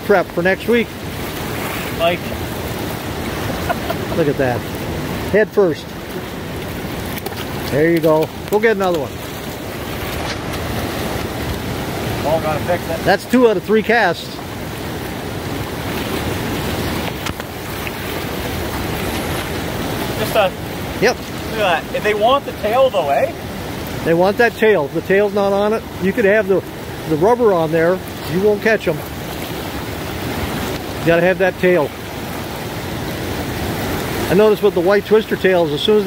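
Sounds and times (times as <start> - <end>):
river rapids rushing: 0.0 - 36.0.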